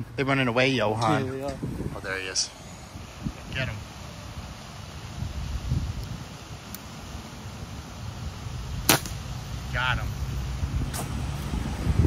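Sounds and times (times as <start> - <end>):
low wind noise on microphone: 1.0 - 12.0
air rifle shot: 8.8 - 9.2.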